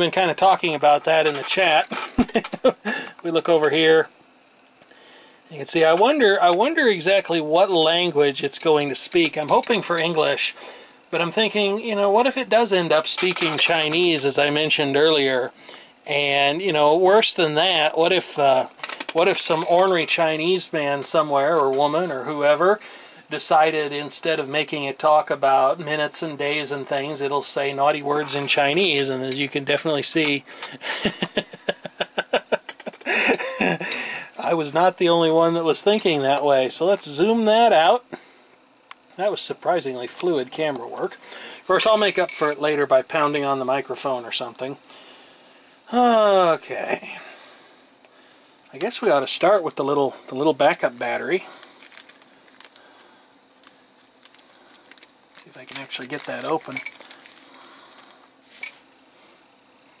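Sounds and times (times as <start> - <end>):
man laughing: 2.1 - 3.2, 30.8 - 34.2, 45.9 - 47.0.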